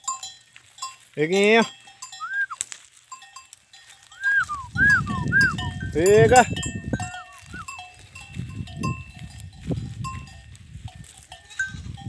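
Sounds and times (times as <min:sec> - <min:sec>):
hooves trampling: 0:00.0 - 0:12.0
livestock bells clanking: 0:00.0 - 0:12.0.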